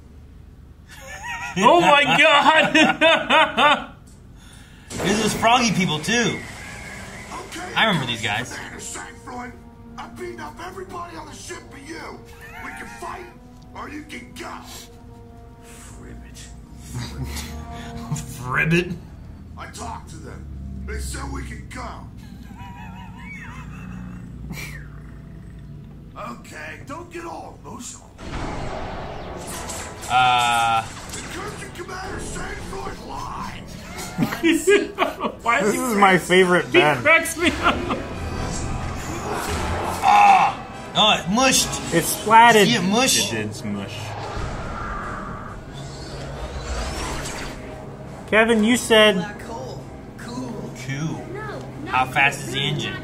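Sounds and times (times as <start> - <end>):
deep engine rumble: 15.0 - 26.8
low hum: 27.6 - 35.6, 37.4 - 48.3
faint rising whine: 28.1 - 33.8, 43.3 - 48.2
falling swoosh: 28.2 - 33.0, 43.5 - 47.8
hum: 43.8 - 48.2.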